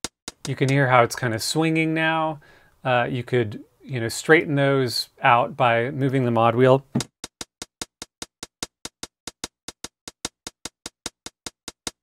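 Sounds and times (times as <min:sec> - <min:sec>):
drum machine hi-hat ticks: 0:00.0 - 0:00.8, 0:07.0 - 0:12.0.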